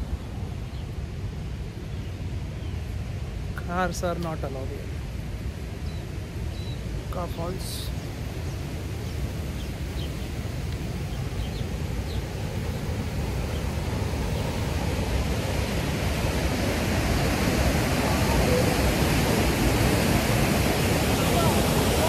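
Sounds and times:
rushing whitewater: 0.0 - 22.0.

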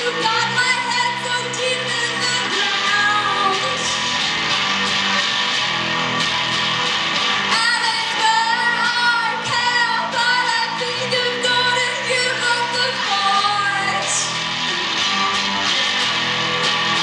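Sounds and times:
woman singing: 0.0 - 4.1, 7.5 - 16.1
strummed electric guitar: 0.0 - 17.0.

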